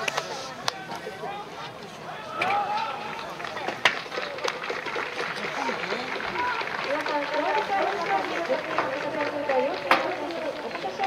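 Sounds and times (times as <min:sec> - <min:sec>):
crowd voices talking and calling: 0:00.0 - 0:11.0.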